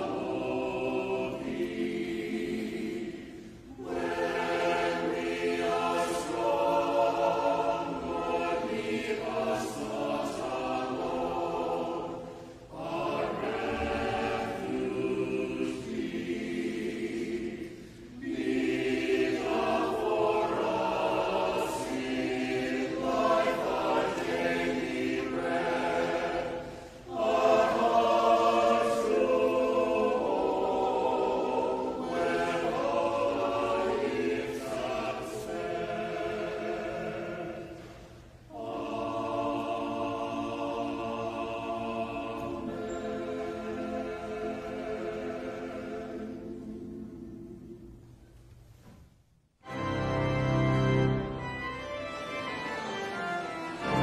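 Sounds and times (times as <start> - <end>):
church choir singing: 0.0 - 48.3, 49.6 - 54.0.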